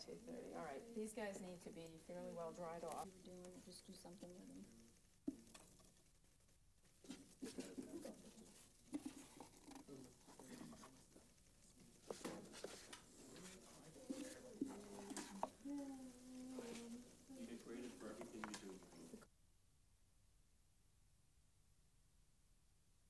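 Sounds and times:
faint indistinct voices: 7.1s - 19.3s.

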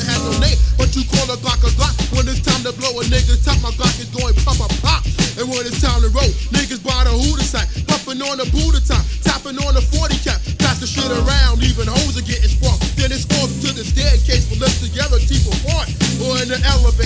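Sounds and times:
booming bass and drums: 0.0s - 17.0s
rapping over a beat: 0.0s - 17.0s.

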